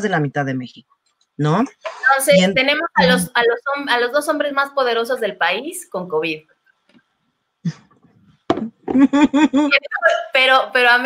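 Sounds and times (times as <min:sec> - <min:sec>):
woman laughing: 0:01.9 - 0:03.3, 0:08.8 - 0:10.2.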